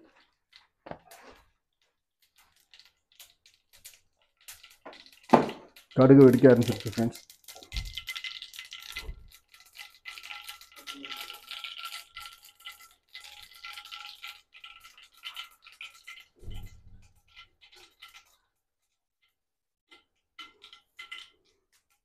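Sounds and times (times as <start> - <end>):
oil crackling and sizzling: 0.0 - 22.0.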